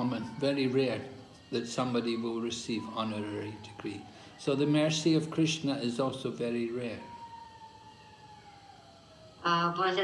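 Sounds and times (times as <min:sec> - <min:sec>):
faint falling siren-like tone: 0:00.0 - 0:10.0.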